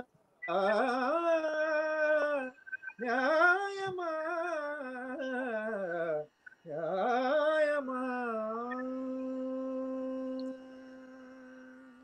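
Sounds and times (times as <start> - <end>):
man singing long note: 3.2 - 12.0.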